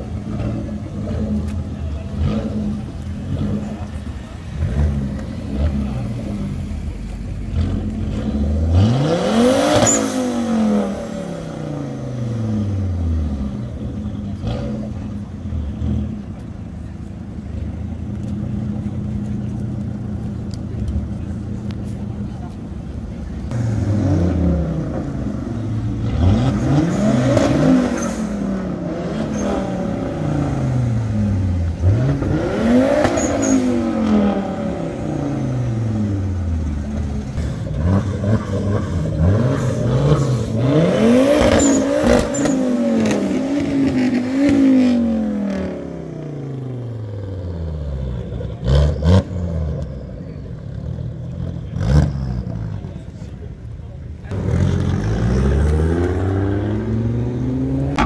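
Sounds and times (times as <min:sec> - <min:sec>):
car engine idling and revving: 0:00.0 - 0:58.0.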